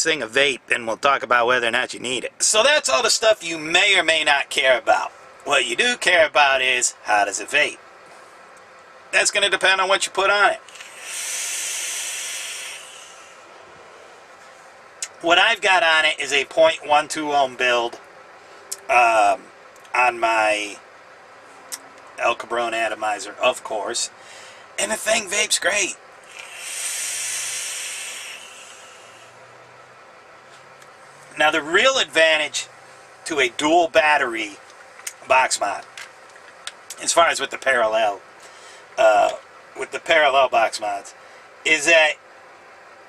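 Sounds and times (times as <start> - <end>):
vape coil hissing: 10.7 - 13.4, 26.3 - 29.3.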